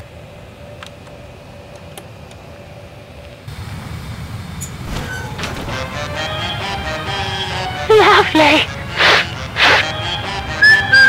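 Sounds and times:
jet engine rumble: 0.0s - 6.2s
thin hum: 8.8s - 11.0s.

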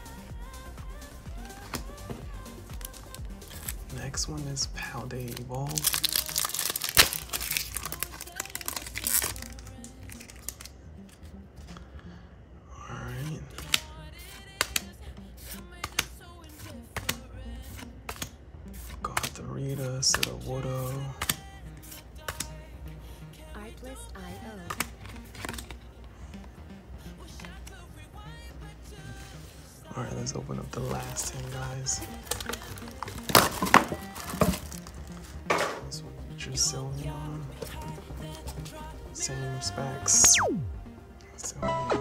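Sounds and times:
background music: 0.0s - 42.0s
shrink wrap ripping and crinkling: 2.6s - 11.2s, 13.5s - 22.6s, 24.6s - 25.9s, 30.6s - 35.5s
trading cards flicking: 13.5s - 22.6s.

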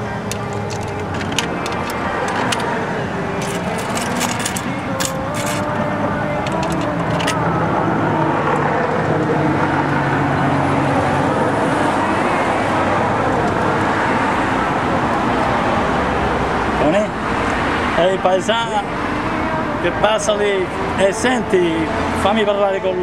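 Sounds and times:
passing cars: 0.0s - 23.0s.

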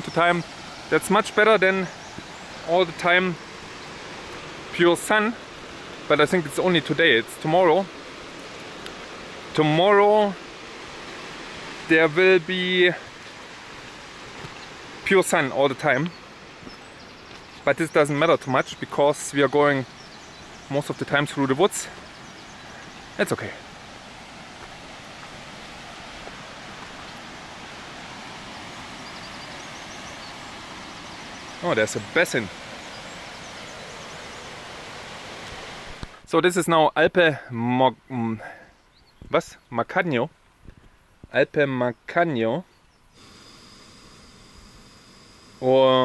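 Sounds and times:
mountain stream rushing: 0.0s - 36.4s.

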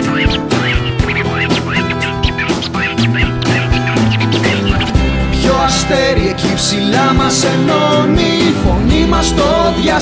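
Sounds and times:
squawking sliding lead instrument: 0.0s - 5.3s
drum beat: 0.0s - 7.4s
bass guitar: 0.0s - 10.0s.

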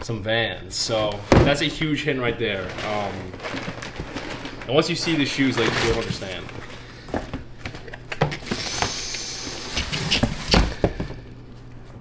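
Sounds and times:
small knocks and crinkles: 1.0s - 8.4s
tissue paper rustling: 2.5s - 6.8s.

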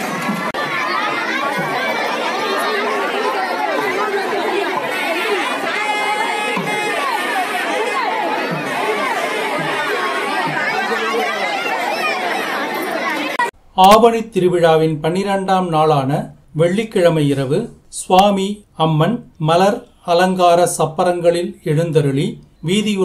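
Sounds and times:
crowd hubbub: 0.0s - 13.6s.

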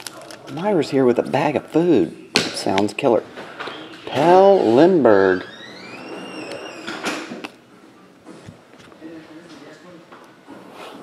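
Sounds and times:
faint rising creak: 5.3s - 7.3s.

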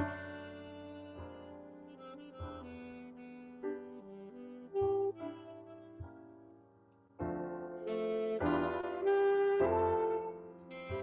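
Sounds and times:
slow jazz ballad on saxophone: 0.0s - 6.6s, 7.5s - 11.0s
grand piano: 0.0s - 11.0s.

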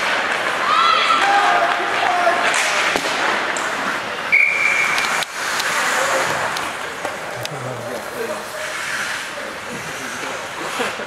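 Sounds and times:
rink and crowd noise: 0.0s - 11.0s
referee's whistle blast: 4.3s - 5.0s.

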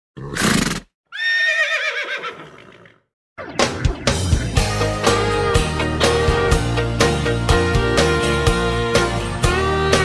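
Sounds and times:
horse whinny: 0.2s - 3.0s.

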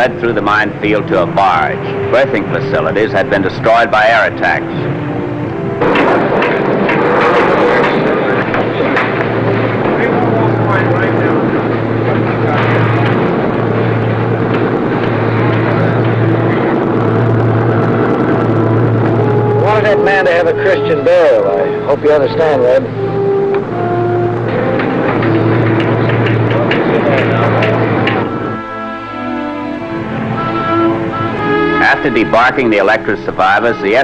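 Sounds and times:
low pulsing throb: 0.0s - 33.4s
indistinct voices: 5.8s - 28.8s, 30.0s - 34.0s.

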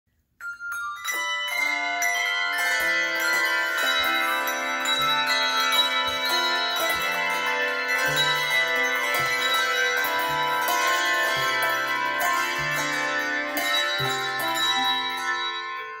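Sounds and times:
handbells ringing a tune: 0.2s - 16.0s.

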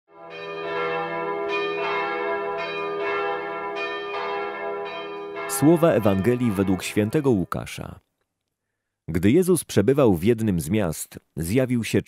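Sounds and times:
bells ringing: 0.2s - 7.8s.

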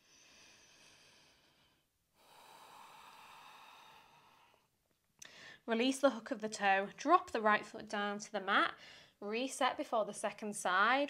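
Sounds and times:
woman breathing: 0.0s - 5.7s, 8.8s - 9.2s.

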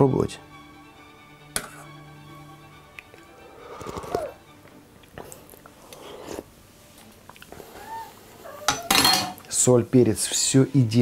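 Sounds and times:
quiet background music: 0.0s - 11.0s
soft sipping and mouth sounds: 3.0s - 7.9s.

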